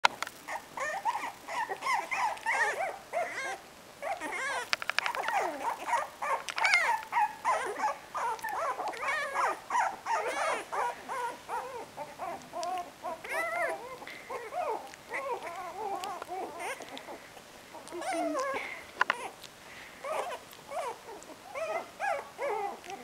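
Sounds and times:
puppies whining and yapping: 0.0 - 23.0.

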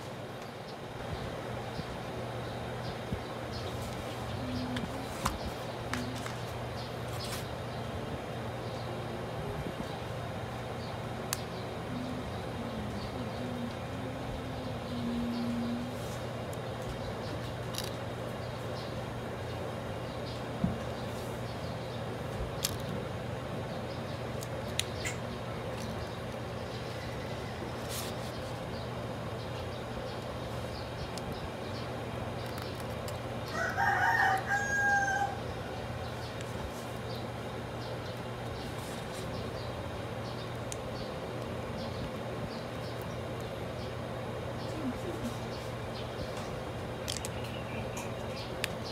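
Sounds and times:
steady low hum: 0.0 - 48.9.

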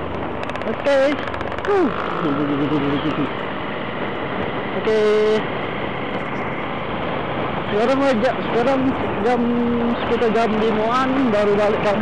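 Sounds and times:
wind and road noise: 0.0 - 12.0.

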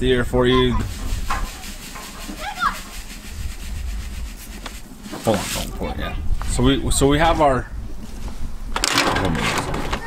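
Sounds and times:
salt trickling into a cup: 0.9 - 5.7.

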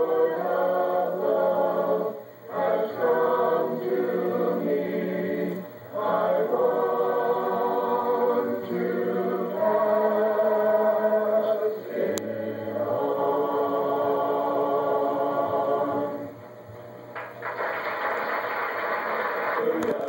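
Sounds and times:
youth choir singing a hymn: 0.0 - 16.4.

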